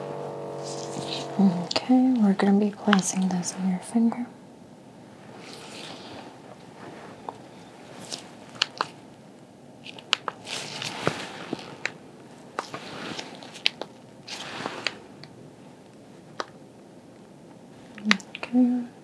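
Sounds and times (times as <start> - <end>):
plastic devices rustling: 5.4 - 9.0, 9.8 - 15.0
sharp plastic clicks: 9.9 - 10.4.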